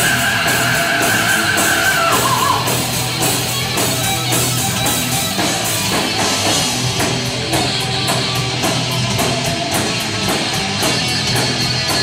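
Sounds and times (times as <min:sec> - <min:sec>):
cymbals struck in fast beat: 0:00.0 - 0:12.0
heavy metal band playing live: 0:00.0 - 0:12.0.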